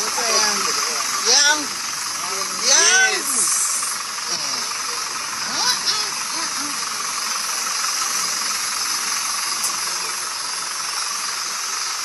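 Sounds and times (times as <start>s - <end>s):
faint voices: 0.0s - 12.0s
steady hiss: 0.0s - 12.0s.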